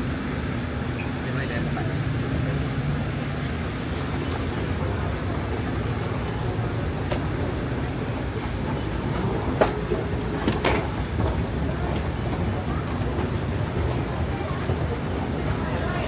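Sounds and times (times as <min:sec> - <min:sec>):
low rumble of indoor concourse: 0:00.0 - 0:16.0
faint voices: 0:01.0 - 0:16.0.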